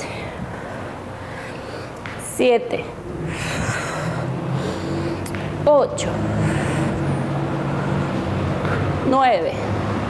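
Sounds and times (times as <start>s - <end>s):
low rumbling hum: 2.6s - 8.8s.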